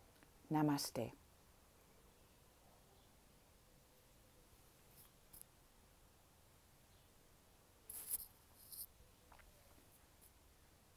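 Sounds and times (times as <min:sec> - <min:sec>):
faint room hiss: 0:00.0 - 0:10.9.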